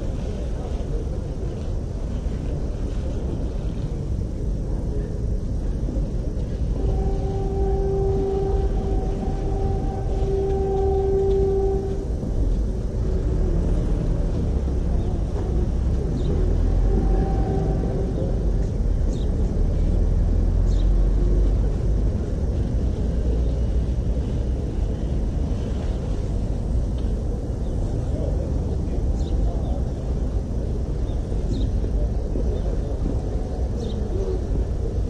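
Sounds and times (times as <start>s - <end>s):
low outdoor rumble: 0.0s - 35.0s
humming tone: 6.5s - 19.2s.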